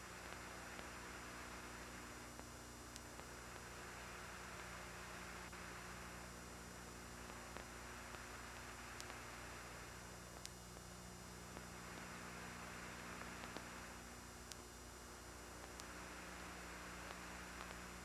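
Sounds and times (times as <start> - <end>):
electrical mains hum: 0.0 - 18.0
faint hiss: 0.0 - 18.0
faint clicks: 0.2 - 1.1, 2.3 - 3.8, 7.2 - 9.4, 10.3 - 10.9, 11.5 - 14.8, 15.5 - 18.0.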